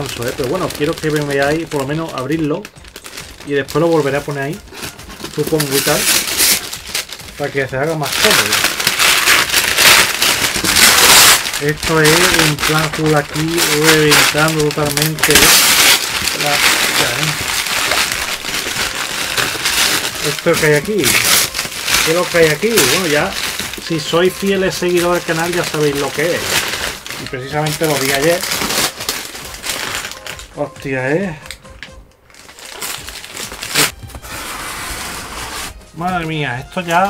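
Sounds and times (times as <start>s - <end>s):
paper tearing and crumpling: 0.0s - 30.5s, 32.4s - 35.9s
plastic packing rustling: 0.0s - 37.0s.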